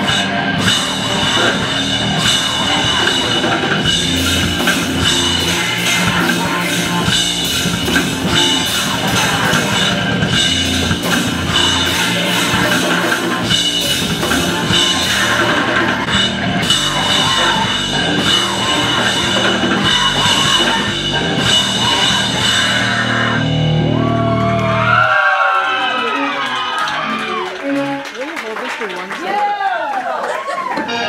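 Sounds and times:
vocals: 0:00.0 - 0:23.6
noisy backing: 0:00.0 - 0:25.0
drum kit pounding: 0:00.0 - 0:25.8.

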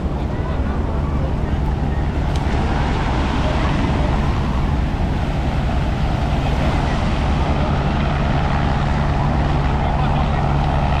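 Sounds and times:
helicopter engine and rotor drone: 0:00.0 - 0:02.3, 0:03.4 - 0:11.0
breaking waves: 0:00.0 - 0:11.0.

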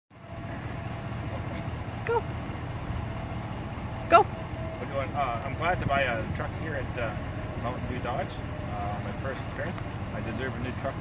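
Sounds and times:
low outdoor rumble: 0:00.1 - 0:11.0.

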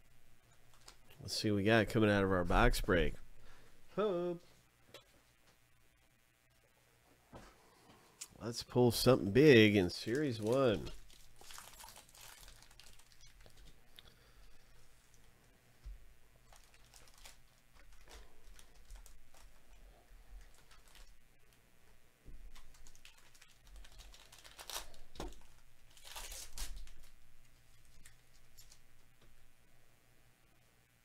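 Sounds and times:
plastic wrapper tearing and crinkling: 0:00.7 - 0:01.1, 0:09.8 - 0:14.0, 0:16.4 - 0:19.8, 0:20.4 - 0:21.2, 0:22.5 - 0:28.9.

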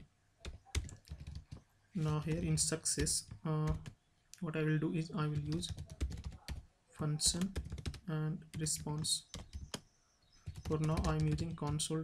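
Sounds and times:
computer keyboard typing: 0:00.0 - 0:04.0, 0:05.2 - 0:06.6, 0:07.2 - 0:09.8, 0:10.4 - 0:12.0.

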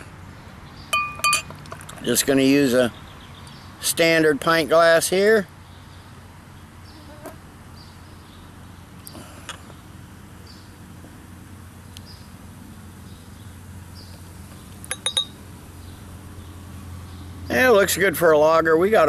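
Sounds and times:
bottle clinking against glass: 0:00.9 - 0:01.6, 0:14.9 - 0:15.4.

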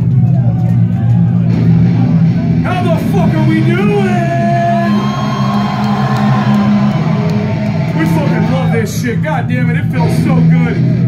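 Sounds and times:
metal band playing live: 0:00.0 - 0:11.0
crowd shouting: 0:04.5 - 0:08.8.

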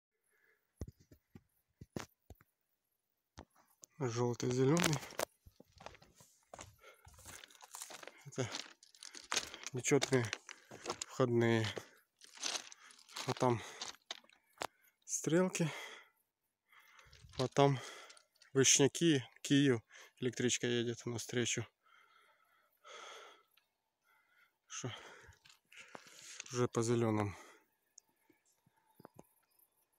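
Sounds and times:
faint rustling: 0:04.8 - 0:14.4.

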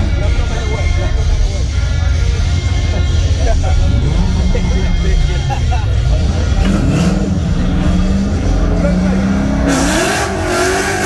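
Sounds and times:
drag racing car engines rumbling: 0:00.0 - 0:11.0
spectators' voices: 0:00.0 - 0:11.0.

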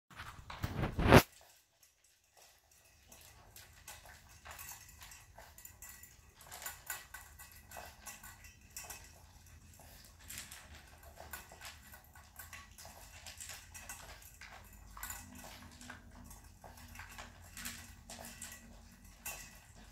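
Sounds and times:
dog eating from metal bowl: 0:00.1 - 0:19.9.

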